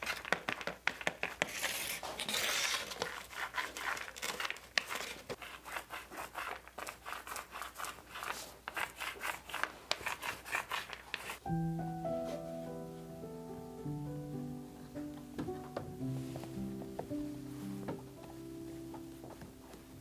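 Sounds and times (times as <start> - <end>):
paint roller crackling in wet paint: 0.0 - 11.5.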